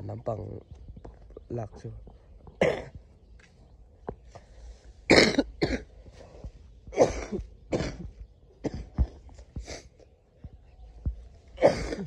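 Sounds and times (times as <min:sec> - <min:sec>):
person coughing harshly: 0:02.6 - 0:03.0, 0:05.1 - 0:05.9, 0:06.9 - 0:09.0, 0:11.6 - 0:12.0.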